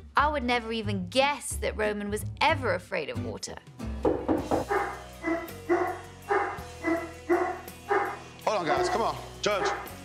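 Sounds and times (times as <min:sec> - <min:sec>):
dog barking: 0:04.6 - 0:10.0.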